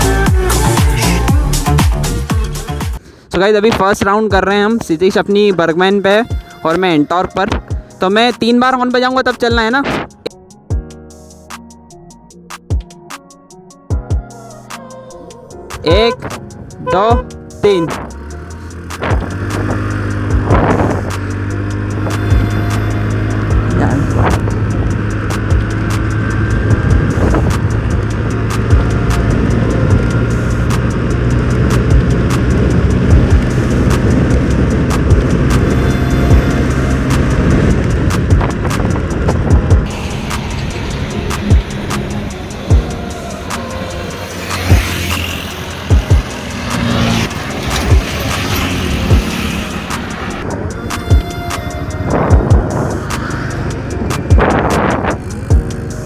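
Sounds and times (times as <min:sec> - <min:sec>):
background music: 0:00.0 - 0:56.0
scooter engine droning: 0:18.2 - 0:56.0
wind noise on microphone: 0:18.9 - 0:22.5, 0:23.6 - 0:25.7, 0:26.3 - 0:43.0, 0:45.8 - 0:56.0.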